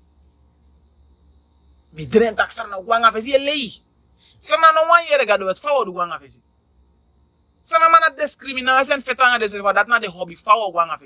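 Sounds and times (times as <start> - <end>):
person speaking: 2.0 - 3.8, 4.4 - 6.4, 7.7 - 11.0.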